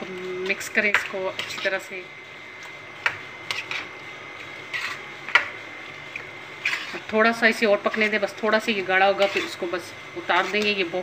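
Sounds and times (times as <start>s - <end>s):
spoon stirring thick sauce: 6.1s - 7.2s, 8.9s - 9.7s, 10.3s - 10.9s
spoon scraping and knocking pan: 6.6s - 7.2s, 9.0s - 9.7s, 10.3s - 10.9s.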